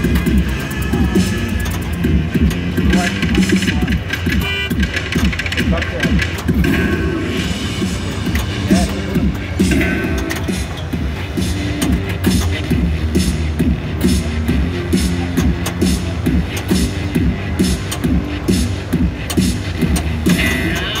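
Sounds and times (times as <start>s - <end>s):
pinball game music: 0.0s - 21.0s.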